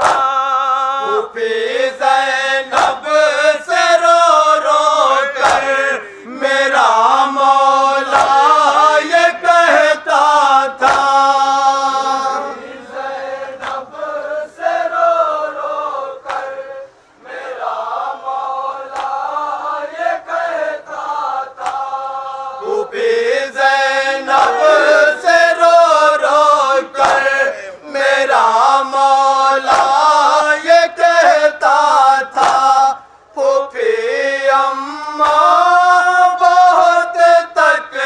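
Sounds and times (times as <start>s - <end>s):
men chanting into microphone: 0.0s - 38.0s
chest-beating strikes: 24.3s - 25.4s.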